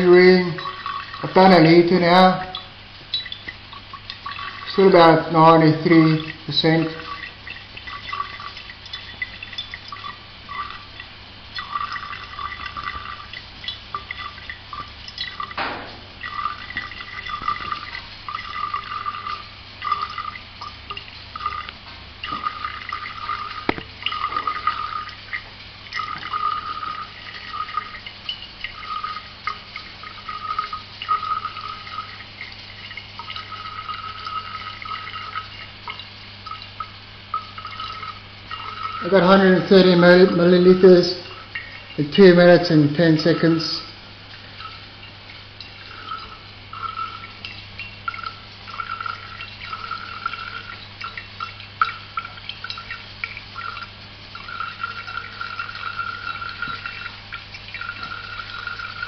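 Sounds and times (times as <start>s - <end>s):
liquid dripping into glass: 0.0s - 39.3s, 40.3s - 42.2s, 44.3s - 59.0s
low steady hum: 0.0s - 59.0s.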